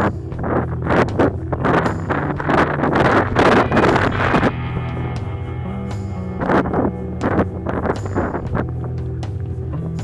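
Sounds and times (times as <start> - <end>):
background music: 0.0 - 10.0
wind buffeting microphone: 0.0 - 10.0.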